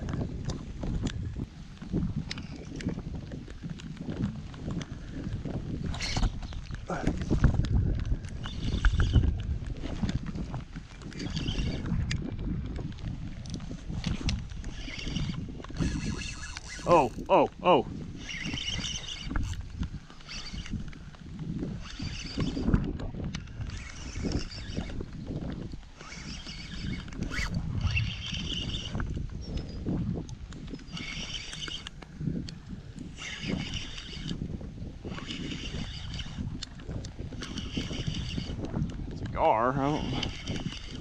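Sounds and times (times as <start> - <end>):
fishing reel gears whirring: 0.0 - 41.0
wind buffeting microphone: 0.0 - 41.0.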